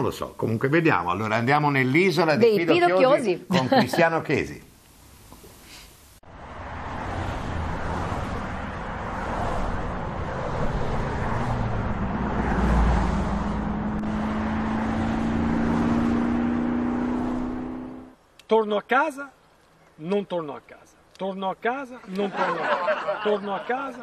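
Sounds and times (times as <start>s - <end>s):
road noise: 6.2s - 24.0s.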